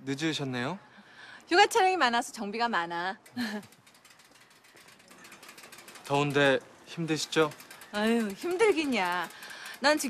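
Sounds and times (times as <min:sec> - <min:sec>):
bicycle freewheel ticking: 0:01.4 - 0:10.0.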